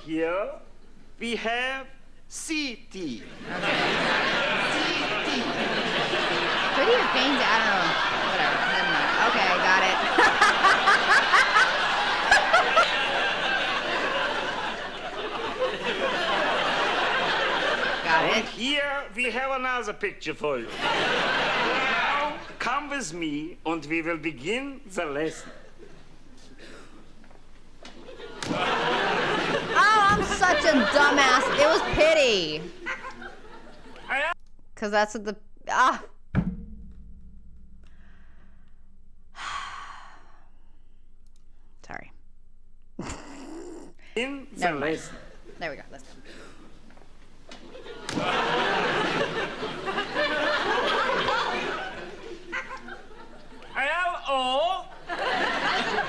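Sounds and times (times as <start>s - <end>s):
woman sighing: 39.4s - 40.5s, 43.0s - 44.2s
woman giggling: 43.0s - 44.0s.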